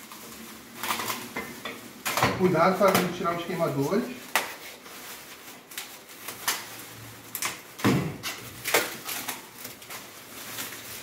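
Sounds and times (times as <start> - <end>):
plastic film crinkling: 0.0 - 11.0.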